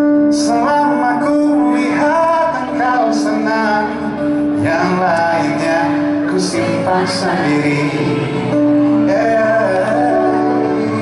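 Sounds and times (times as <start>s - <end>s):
acoustic and electric guitars: 0.0s - 11.0s
male singer: 0.0s - 11.0s.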